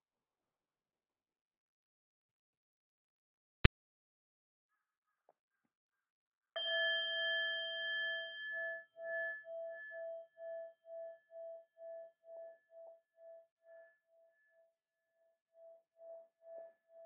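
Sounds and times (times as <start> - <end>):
singing bowl ringing with pulsing: 6.6 - 13.0.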